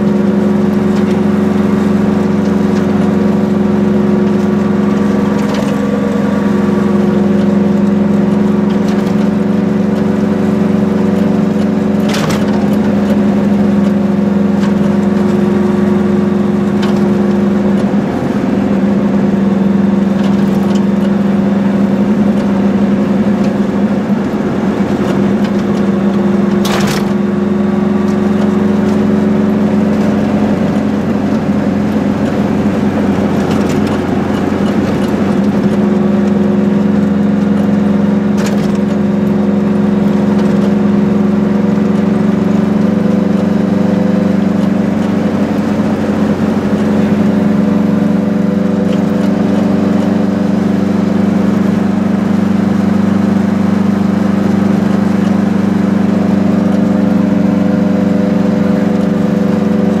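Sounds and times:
two-stroke car engine running: 0.0s - 60.0s.

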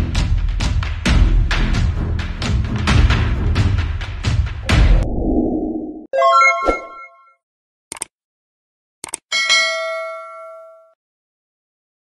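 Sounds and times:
short clicks: 7.9s - 8.2s, 9.0s - 9.3s
bell-like ding: 9.4s - 11.0s.

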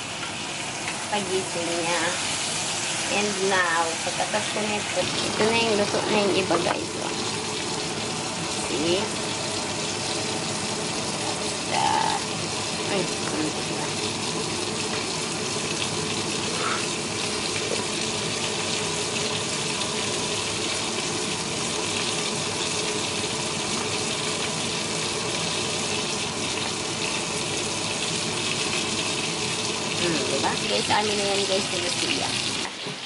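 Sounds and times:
cutlets sizzling in oil: 0.0s - 33.0s.

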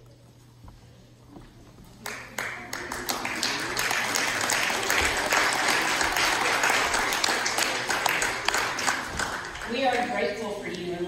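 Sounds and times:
congregation applauding: 2.0s - 10.3s.

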